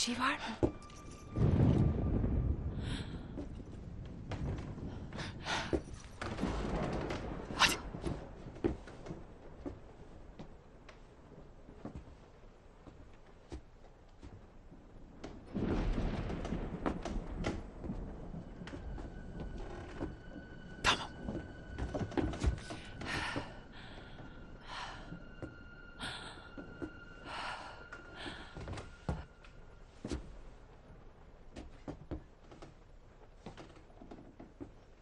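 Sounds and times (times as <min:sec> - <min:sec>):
soft knocks and creaks: 0:03.4 - 0:23.5, 0:31.5 - 0:35.0.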